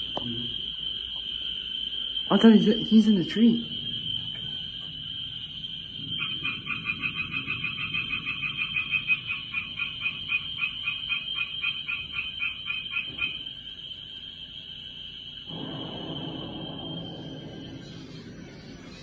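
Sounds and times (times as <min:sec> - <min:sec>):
steady high whine: 0:12.6 - 0:19.0.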